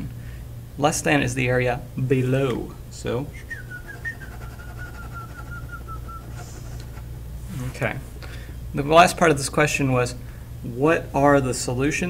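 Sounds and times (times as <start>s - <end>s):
steady low hum: 0.0s - 12.0s
person whistling long note: 3.3s - 6.7s.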